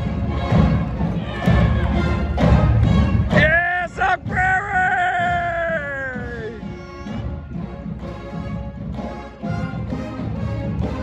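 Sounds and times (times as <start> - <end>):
person whooping: 3.4 - 6.6.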